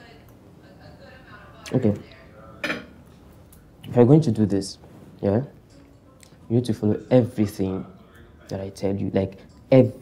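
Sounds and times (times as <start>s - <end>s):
cutlery clinking on a plate: 2.6s - 3.0s.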